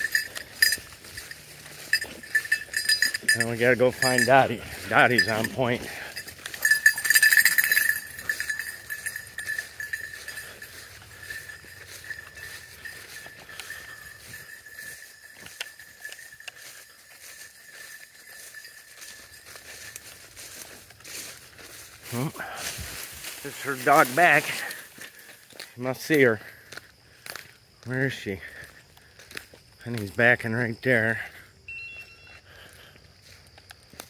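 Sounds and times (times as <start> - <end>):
dog collar bell jingling: 0.0 - 26.6, 27.9 - 34.0.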